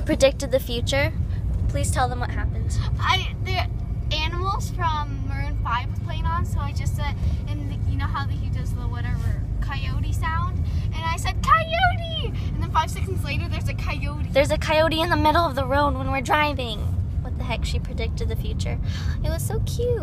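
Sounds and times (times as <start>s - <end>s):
car driving rumble: 0.0s - 20.0s
girl talking and laughing: 9.8s - 20.0s.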